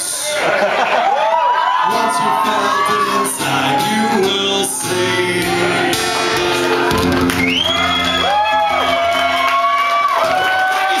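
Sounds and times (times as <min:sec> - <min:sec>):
audience cheering: 0:00.0 - 0:11.0
acoustic guitar chord ringing: 0:05.0 - 0:09.7
high gliding whoops: 0:05.4 - 0:10.9.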